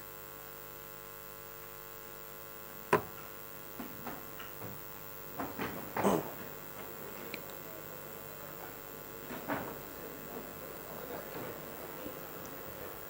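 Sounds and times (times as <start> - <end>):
electrical mains hum: 0.0 - 13.0
sharp knock: 2.9 - 3.2.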